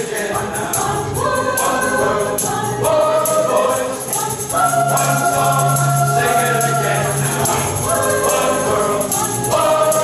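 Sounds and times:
mixed choir singing: 0.0s - 10.0s
tambourine jingling: 0.0s - 10.0s.

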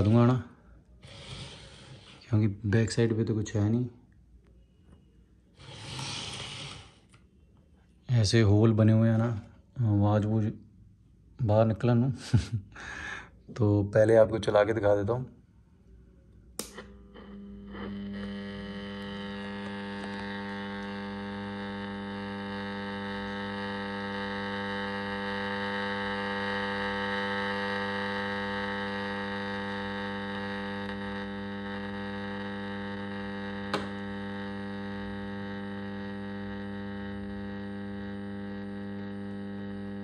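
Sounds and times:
radio speaker hum: 0.0s - 4.0s, 16.6s - 40.0s
radio switch clicks: 16.6s - 16.9s.

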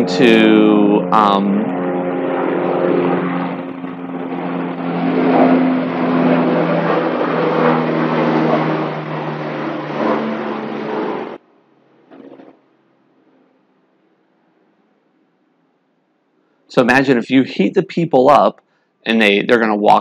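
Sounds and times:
loud engine drone: 0.0s - 11.4s.

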